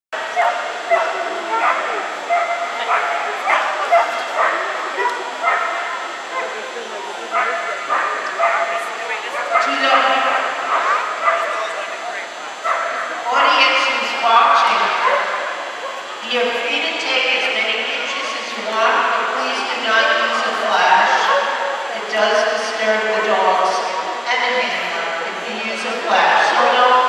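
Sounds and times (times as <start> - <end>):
dog barking: 0.2 - 6.6, 7.3 - 11.8, 12.6 - 13.2, 15.0 - 16.0, 21.1 - 21.8.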